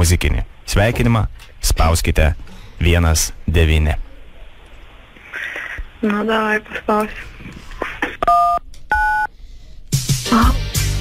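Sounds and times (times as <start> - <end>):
telephone keypad tones: 8.2 - 9.3.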